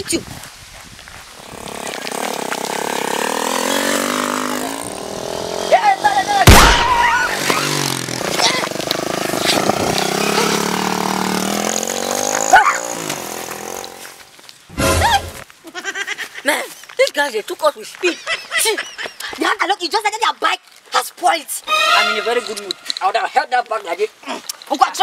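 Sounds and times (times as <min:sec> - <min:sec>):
motorcycle engine passing by: 0:01.4 - 0:14.2
loud sharp bang: 0:06.4 - 0:07.6
sharp crack: 0:06.4 - 0:11.3.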